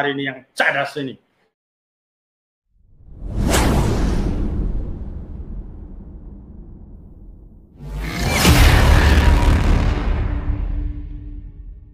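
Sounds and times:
cinematic whoosh: 0:02.9 - 0:11.9.

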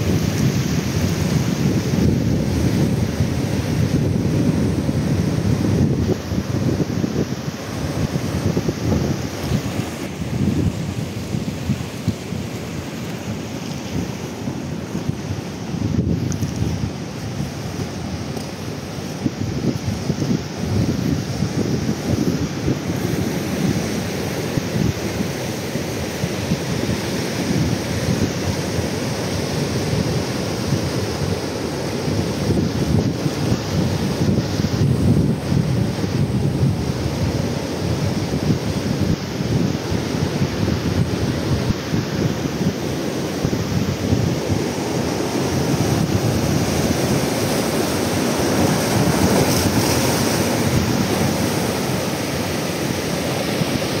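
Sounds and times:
ocean surf breaking over rocks: 0:00.0 - 0:54.0
wind buffeting microphone: 0:00.0 - 0:54.0.

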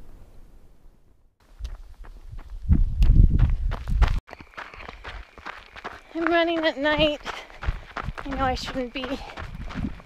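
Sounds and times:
low rumble on microphone: 0:00.0 - 0:04.2
footfalls on dirt track: 0:02.4 - 0:10.0.

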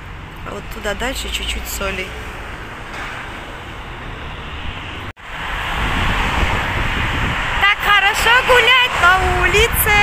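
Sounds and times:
city traffic hum: 0:00.0 - 0:10.0.

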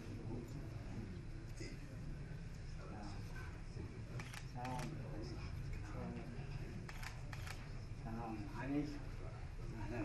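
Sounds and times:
camera shutter clicks: 0:04.2 - 0:04.9, 0:06.9 - 0:07.6.

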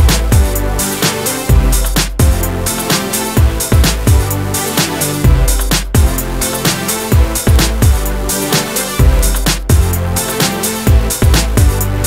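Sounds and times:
electronic music with kick drum: 0:00.0 - 0:12.0.

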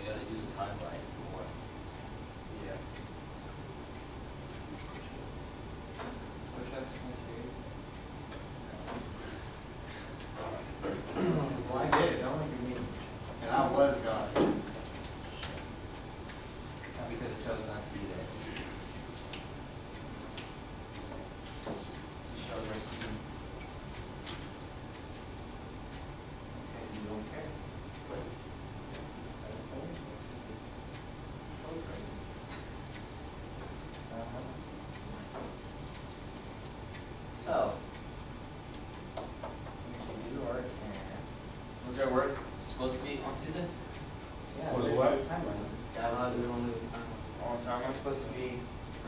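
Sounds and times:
steady room hum: 0:00.0 - 0:49.0
light irregular clicking: 0:32.5 - 0:37.3.

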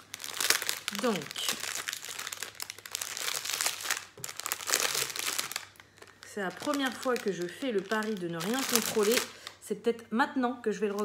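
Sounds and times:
plastic packet crinkling: 0:00.0 - 0:09.6.

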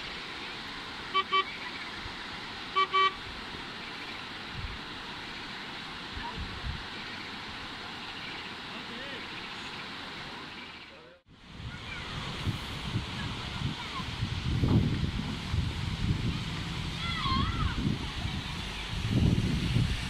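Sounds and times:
steady background hiss: 0:00.0 - 0:20.0
car horn double beeps: 0:01.1 - 0:01.6, 0:02.8 - 0:03.2.

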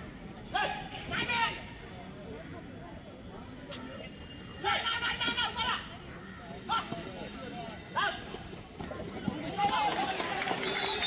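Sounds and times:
people shouting and chattering: 0:00.0 - 0:11.0.

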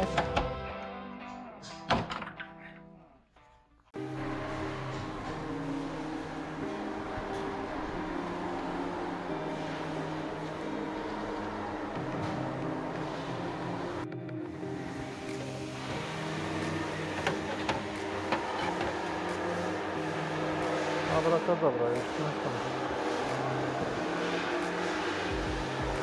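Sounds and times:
music with sustained chord tones: 0:04.0 - 0:26.0.

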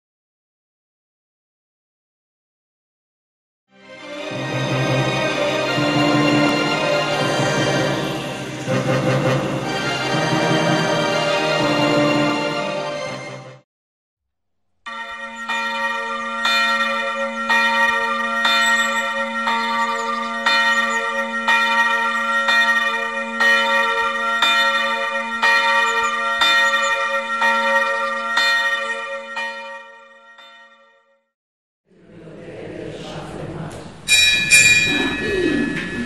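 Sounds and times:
church bell ringing: 0:04.2 - 0:13.1, 0:14.9 - 0:31.2, 0:34.1 - 0:36.0
bell's steady low hum: 0:34.1 - 0:36.0.

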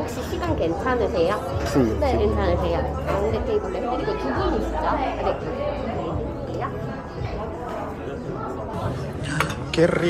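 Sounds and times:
diners chattering: 0:00.0 - 0:10.0.

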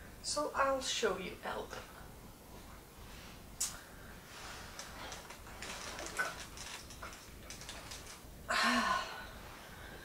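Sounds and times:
faint rustling: 0:02.5 - 0:08.3.

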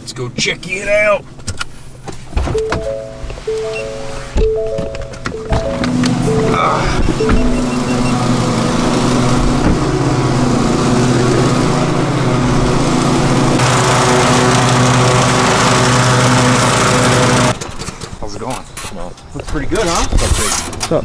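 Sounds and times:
riding lawn mower running: 0:02.5 - 0:18.2.

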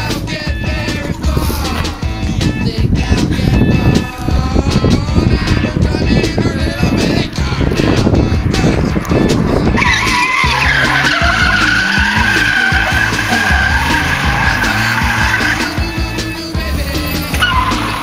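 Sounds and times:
car engine running hard: 0:03.4 - 0:18.0
tyres squealing: 0:08.9 - 0:18.0.

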